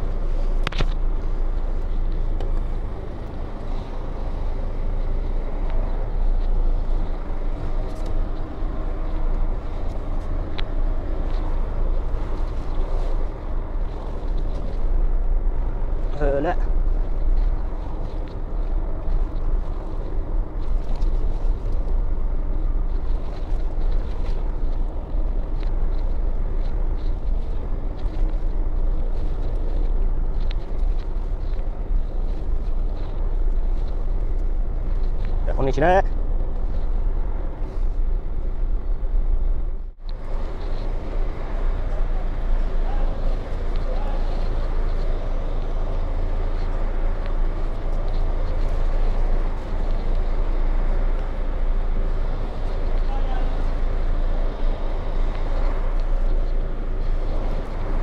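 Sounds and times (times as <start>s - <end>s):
diesel truck engine rumbling: 0.0s - 58.0s.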